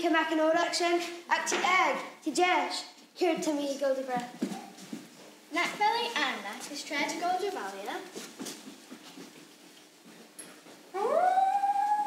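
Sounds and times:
long howl: 11.0s - 12.0s.

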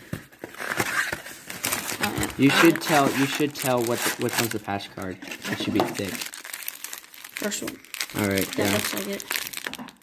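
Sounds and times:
cardboard and paper rustling: 0.0s - 10.0s.

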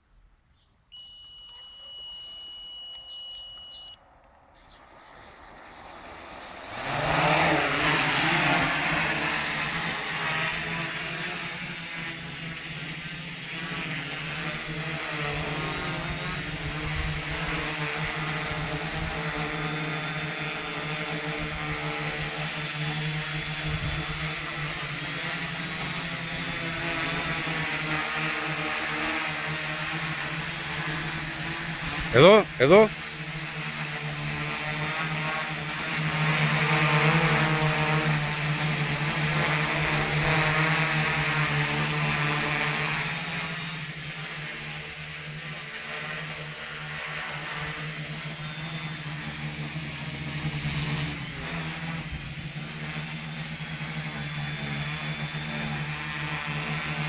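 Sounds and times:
high electronic tone: 0.9s - 4.0s
quadcopter propeller buzz: 1.0s - 57.0s.

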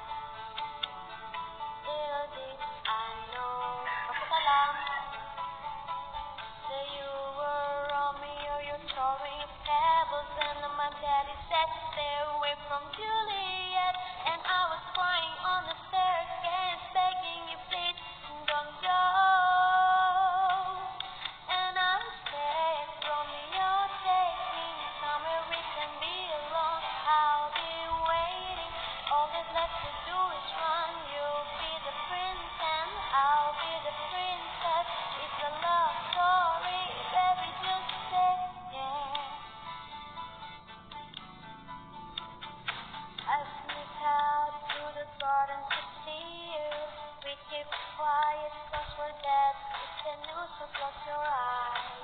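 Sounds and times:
backing music: 0.0s - 52.0s
young woman singing: 1.8s - 5.5s, 6.6s - 39.5s, 43.2s - 52.0s.

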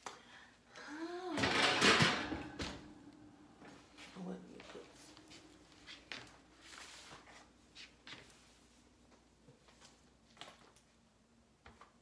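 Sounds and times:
person humming: 0.8s - 1.5s.

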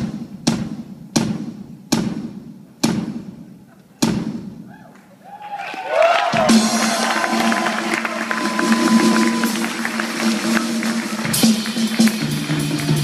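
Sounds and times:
crowd shouting and whistling: 4.7s - 10.2s.

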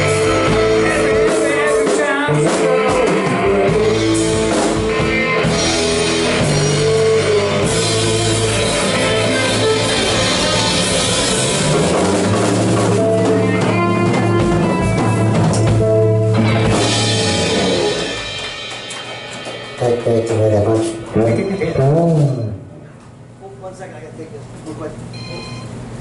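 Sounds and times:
electric bass: 0.0s - 19.0s
drum kit: 0.0s - 23.0s
electric guitars: 0.0s - 23.1s.

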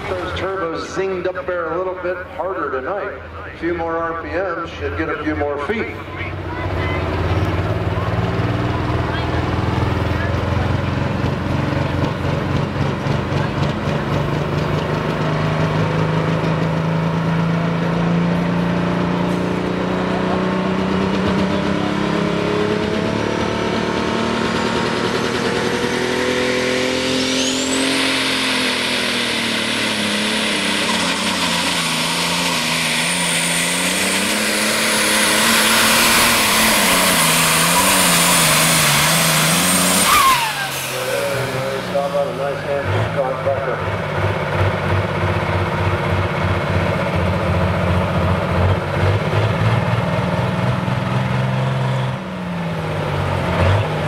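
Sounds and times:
diesel tractor engine running: 0.0s - 54.0s
high turbo whine: 0.0s - 54.0s.

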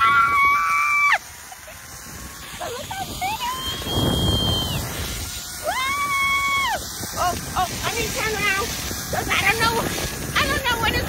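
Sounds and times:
woman screaming: 0.0s - 1.2s, 5.6s - 6.9s
wind on microphone: 0.0s - 11.0s.

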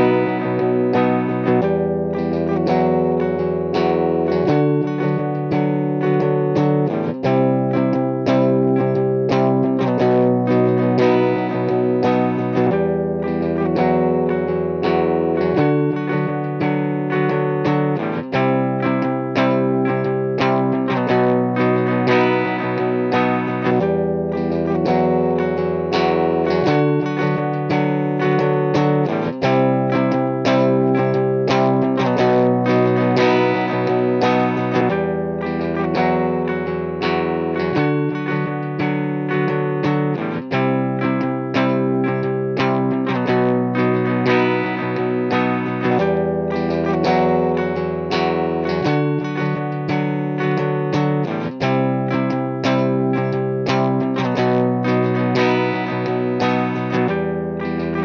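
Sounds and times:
overdriven electric guitar chords: 0.0s - 58.0s.

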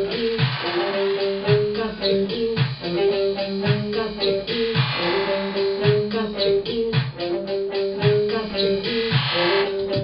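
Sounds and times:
drum machine beat: 0.0s - 10.0s
electric guitar: 0.0s - 10.0s.

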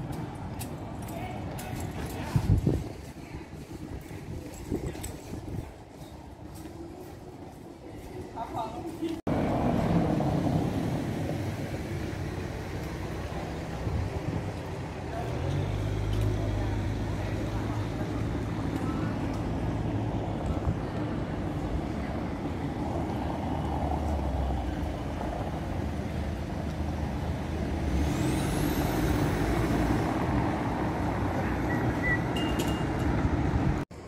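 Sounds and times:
cars driving on cobblestones: 0.0s - 34.0s.

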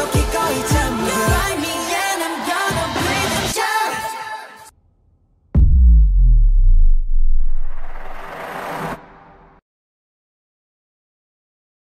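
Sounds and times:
noisy whoosh: 5.0s - 9.6s
deep bass boom: 5.5s - 8.3s.

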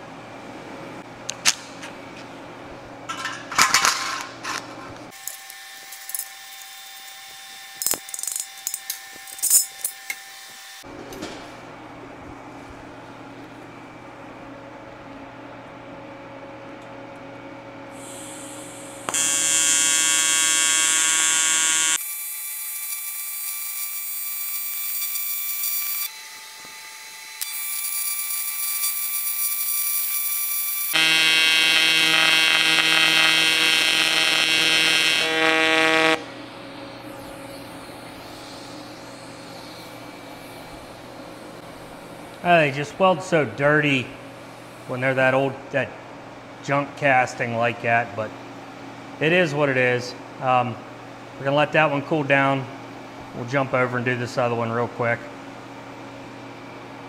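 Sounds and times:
welding arc buzzing: 5.1s - 10.9s, 18.0s - 42.8s
man talking: 42.4s - 44.2s, 44.9s - 46.0s, 46.6s - 48.3s, 49.2s - 50.8s, 51.4s - 52.7s, 53.4s - 55.3s.

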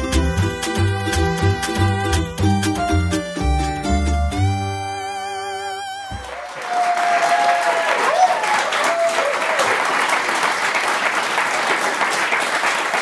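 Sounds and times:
intro music: 0.0s - 6.3s
audience applauding: 6.1s - 13.0s.

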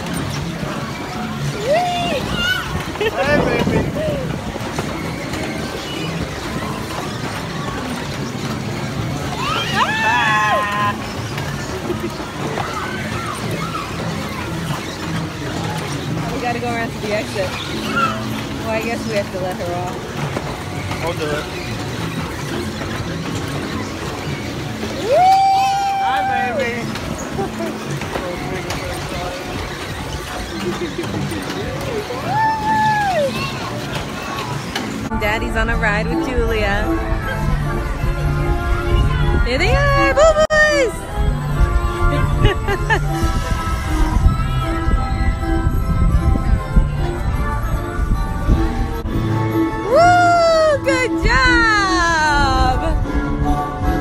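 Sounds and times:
carousel ride rumble: 0.0s - 54.0s
faint amusement park sounds: 0.0s - 54.0s
scattered voices: 0.0s - 54.0s.

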